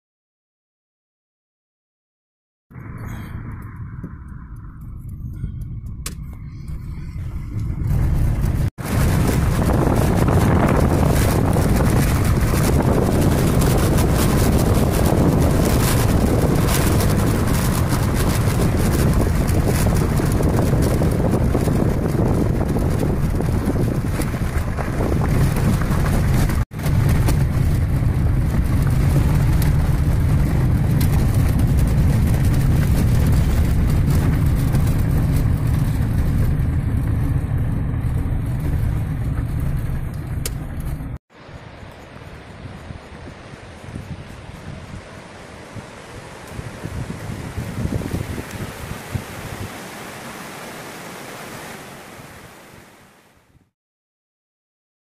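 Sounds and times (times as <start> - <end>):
wind noise: 2.7 - 53.7
car engine and tyre rumble: 2.8 - 53.0.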